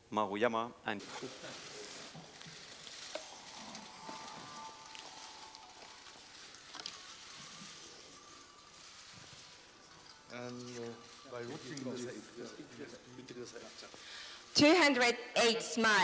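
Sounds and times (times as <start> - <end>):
low room hiss: 0.0 - 16.0.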